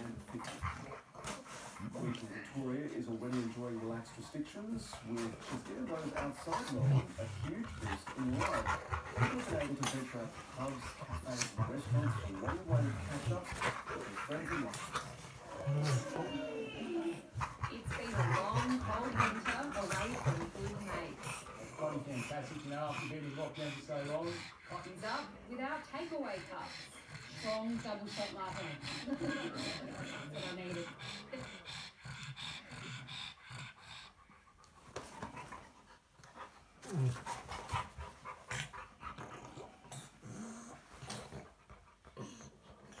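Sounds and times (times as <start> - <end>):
dogs breathing: 0.0 - 43.0
dogs growling: 0.0 - 43.0.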